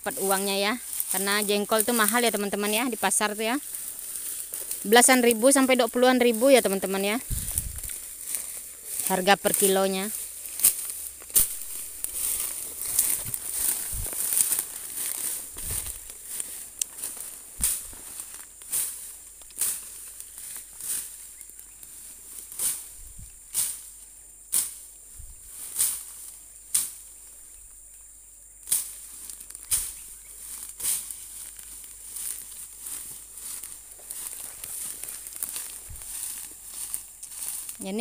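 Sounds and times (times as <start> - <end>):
machete slashing through undergrowth: 7.2 - 21.2, 22.4 - 24.9, 25.5 - 27.0, 28.7 - 37.8.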